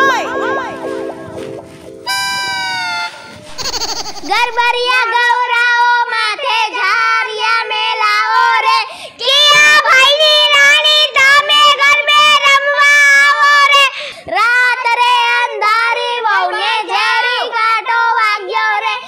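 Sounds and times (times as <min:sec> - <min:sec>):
child singing high notes: 0:02.1 - 0:19.0.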